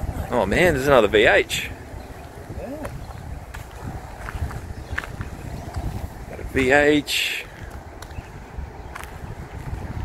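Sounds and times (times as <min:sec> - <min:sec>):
footsteps on grass and dirt: 0:02.3 - 0:06.3.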